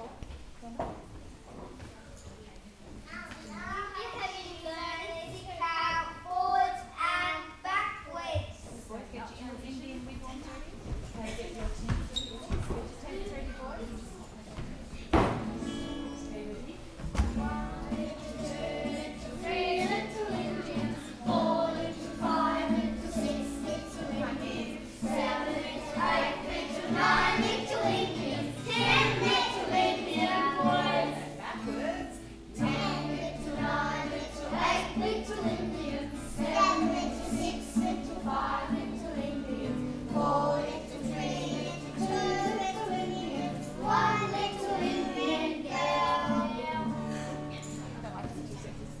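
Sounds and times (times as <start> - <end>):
strummed acoustic guitar: 15.2 - 49.0
children singing: 17.2 - 47.5.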